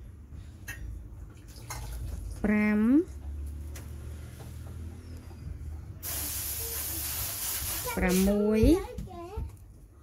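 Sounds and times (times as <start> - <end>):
loud even hiss: 6.0 - 8.4.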